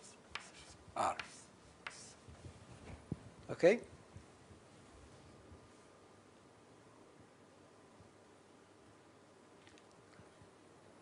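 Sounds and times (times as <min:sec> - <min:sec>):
person speaking: 0:00.0 - 0:02.2
chalk tapping and strokes on board: 0:00.0 - 0:02.3.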